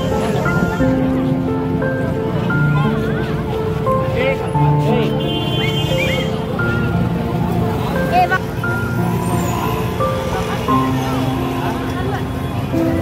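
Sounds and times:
crowd chattering: 0.0 - 13.0
music: 0.0 - 13.0
passing traffic: 0.0 - 13.0.

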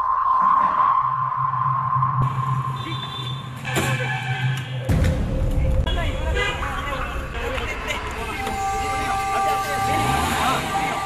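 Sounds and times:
steady low rumble: 4.9 - 9.3
men calling out: 8.0 - 11.0.

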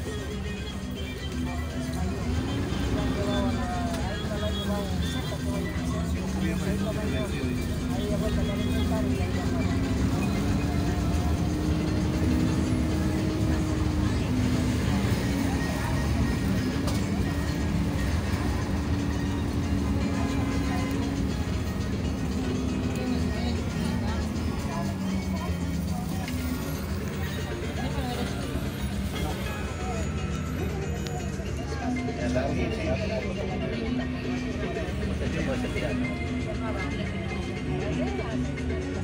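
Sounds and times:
bus engine rumble: 0.0 - 39.0
faint music: 0.0 - 39.0
road noise: 0.0 - 39.0.

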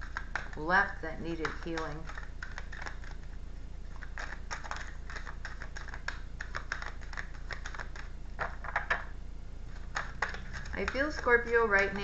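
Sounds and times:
cards being shuffled: 0.0 - 0.7, 1.3 - 9.1, 9.7 - 12.0.

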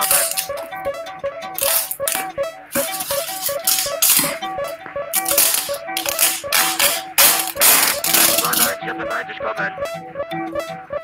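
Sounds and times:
rattling crackling noise bursts: 0.0 - 9.1
repeating short synth notes: 0.0 - 11.0.

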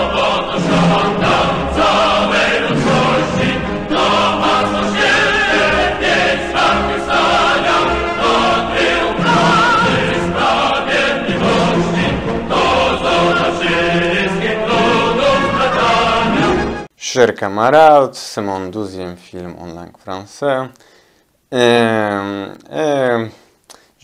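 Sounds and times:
choir singing: 0.0 - 16.9
instrumental accompaniment: 0.0 - 16.9.

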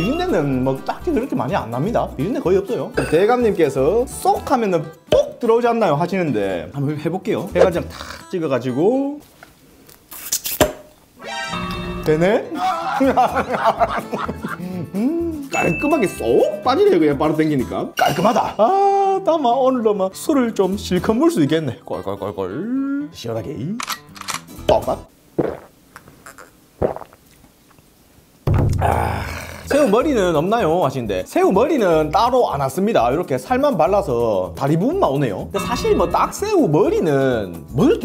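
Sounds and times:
musical sound effect burst: 0.0 - 1.4, 11.2 - 13.9, 35.6 - 37.2
person gulping a drink: 25.4 - 27.8
sharp knock: 28.5 - 28.8.

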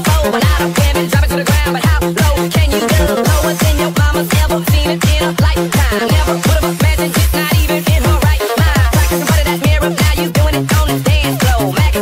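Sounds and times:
pounding kick drum beat: 1.7 - 12.0
electronic dance music: 2.3 - 12.0
pulsing bass line: 2.4 - 4.8.

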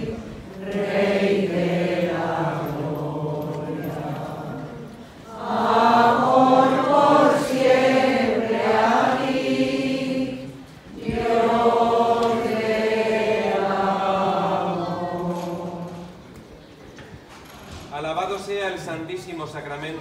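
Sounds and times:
crowd singing a hymn: 0.0 - 16.6.

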